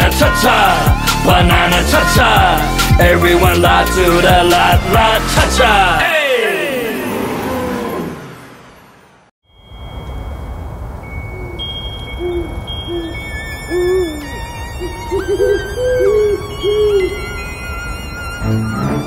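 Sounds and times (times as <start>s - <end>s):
pop song with beat: 0.0s - 6.6s
high twinkling tones: 6.1s - 19.0s
windy hiss: 9.6s - 13.8s
owl hoots: 11.3s - 17.4s.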